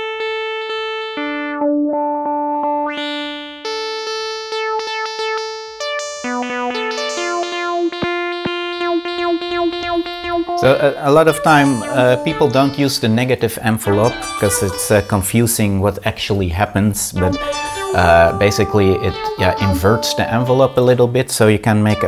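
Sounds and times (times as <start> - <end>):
buzzy synthesizer notes: 0.0 - 22.0.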